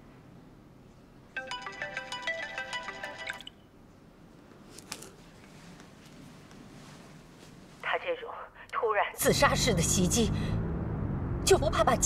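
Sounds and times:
smartphone ringtone chiming: 0:01.4 - 0:03.6.

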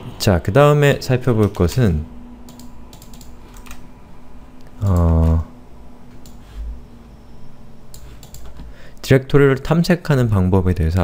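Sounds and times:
low hum: 0:00.0 - 0:11.0
mouse or keyboard clicks: 0:08.0 - 0:08.6.

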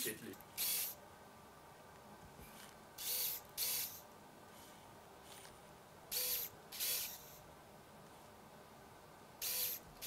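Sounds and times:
bionic hand motors whirring: 0:00.6 - 0:01.0, 0:03.0 - 0:04.0, 0:06.1 - 0:07.4, 0:09.4 - 0:09.9.

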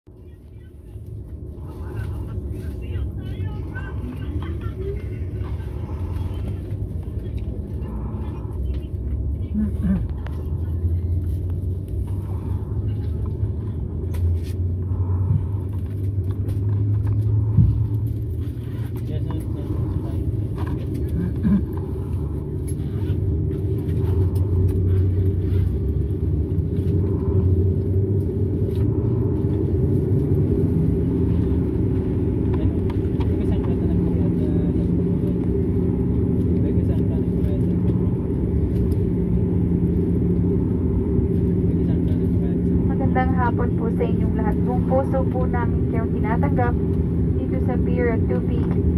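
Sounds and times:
cabin announcement voice: 0:00.1 - 0:11.0, 0:41.8 - 0:48.9
airplane cabin hum and rumble: 0:00.1 - 0:48.9
droning tone: 0:00.1 - 0:48.9.

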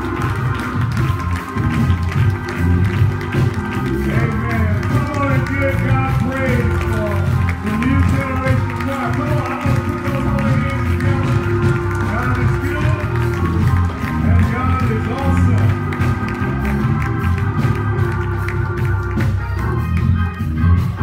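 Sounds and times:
church band playing: 0:00.0 - 0:21.0.

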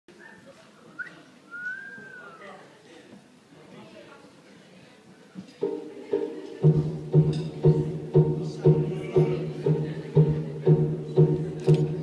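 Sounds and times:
person whistling: 0:01.5 - 0:02.4.

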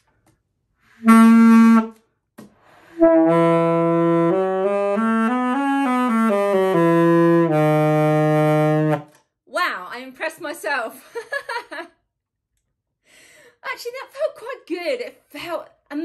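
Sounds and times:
alto saxophone notes: 0:00.9 - 0:02.0, 0:02.8 - 0:09.1.

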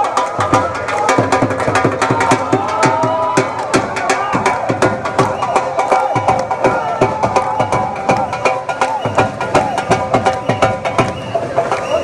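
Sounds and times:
crowd cheering: 0:00.0 - 0:12.0
dhol drum beating fast rhythm: 0:00.0 - 0:12.0
folk music over pa: 0:00.0 - 0:12.0.

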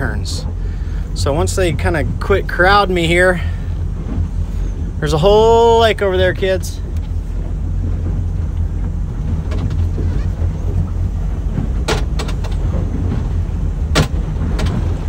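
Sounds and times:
boat engine low rumble: 0:00.0 - 0:15.0
water and air noise: 0:00.0 - 0:15.0
sharp knocks: 0:13.9 - 0:15.0.

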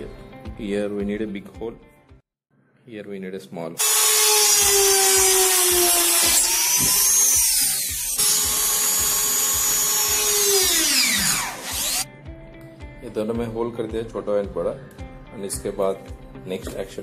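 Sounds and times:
electric drill whining: 0:03.8 - 0:12.1.

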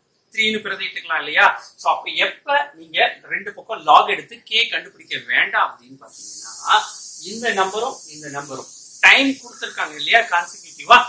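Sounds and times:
constant high hiss: 0:00.0 - 0:11.0
man speaking: 0:00.4 - 0:11.0.

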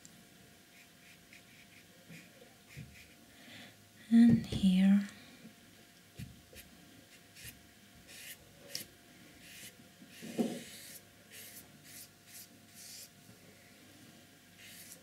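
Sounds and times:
paintbrush strokes on paper: 0:09.4 - 0:13.1, 0:14.6 - 0:15.0.

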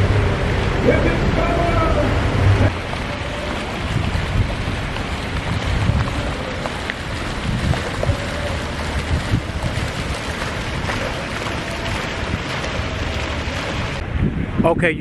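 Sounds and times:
fountain water splashing: 0:00.0 - 0:14.0
wind buffeting microphone: 0:00.0 - 0:15.0.

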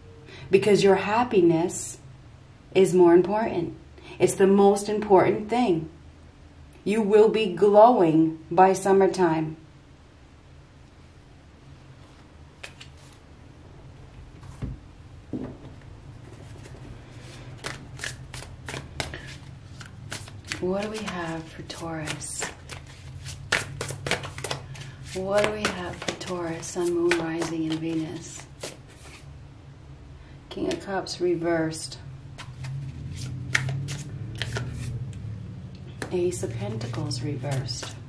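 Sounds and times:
woman speaking: 0:00.5 - 0:02.0, 0:02.7 - 0:06.0, 0:06.8 - 0:09.6, 0:20.5 - 0:22.6, 0:25.1 - 0:28.5, 0:30.5 - 0:32.1, 0:36.0 - 0:38.0
cards being shuffled: 0:12.0 - 0:13.2, 0:16.2 - 0:29.3, 0:32.4 - 0:35.0, 0:36.7 - 0:38.0.

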